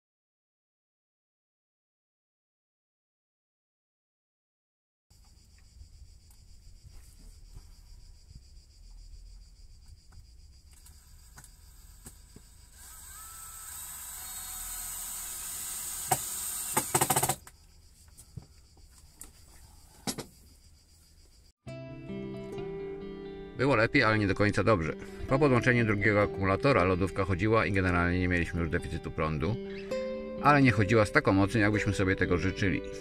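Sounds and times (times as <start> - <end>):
guitar music: 21.6 - 33.0.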